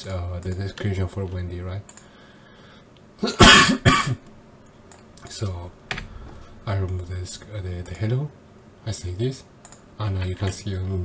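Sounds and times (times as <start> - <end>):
person coughing: 3.2 - 4.2.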